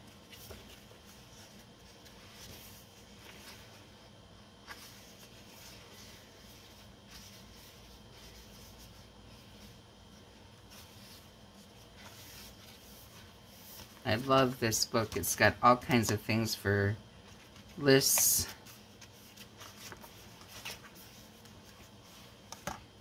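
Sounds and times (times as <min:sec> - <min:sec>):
paper pages rustling: 0:00.0 - 0:04.0, 0:04.6 - 0:15.4, 0:17.2 - 0:23.0.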